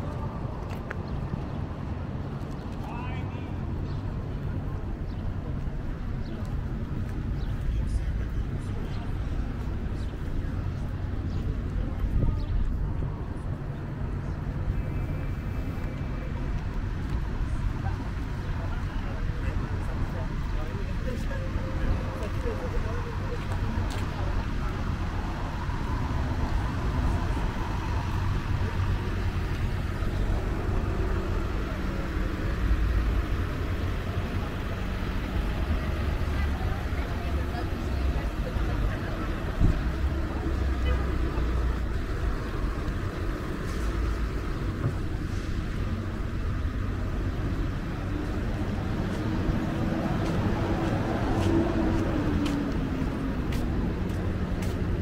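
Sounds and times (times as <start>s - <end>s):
low traffic rumble: 0.0s - 55.0s
indistinct voices: 6.2s - 55.0s.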